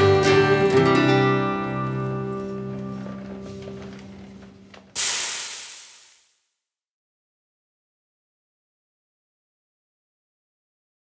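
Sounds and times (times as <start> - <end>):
smoke-puff hiss: 5.0 - 6.4.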